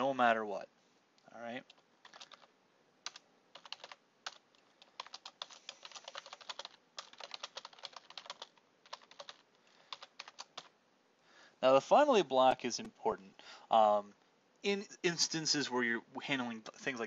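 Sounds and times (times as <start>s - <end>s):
typing on computer keyboard: 1.7s - 10.7s.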